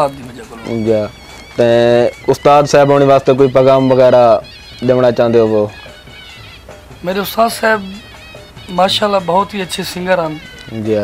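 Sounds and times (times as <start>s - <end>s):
man speaking: 0.0s - 5.8s, 7.0s - 11.0s.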